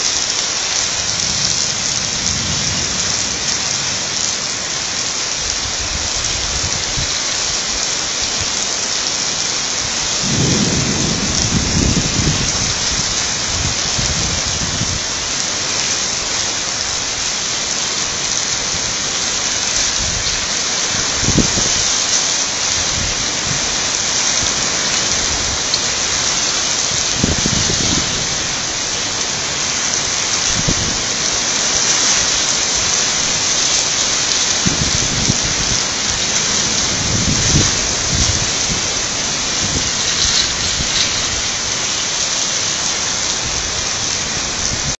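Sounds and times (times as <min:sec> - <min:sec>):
heavy rain: 0:00.0 - 0:45.0
thunder rumbling: 0:00.0 - 0:45.0.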